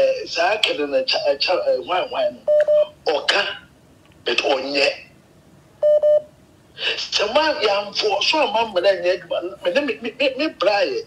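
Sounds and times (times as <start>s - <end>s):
telephone beep: 2.5s - 2.9s, 5.8s - 6.3s.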